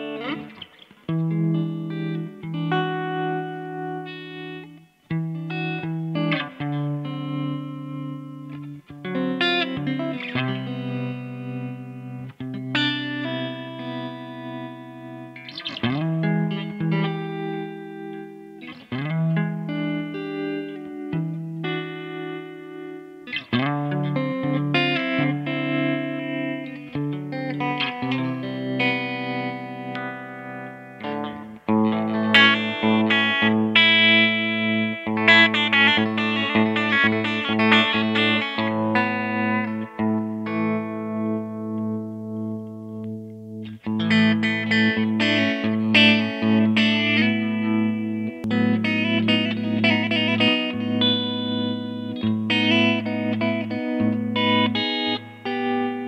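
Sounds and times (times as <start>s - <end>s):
clean electric guitar chords: 0.0s - 56.0s.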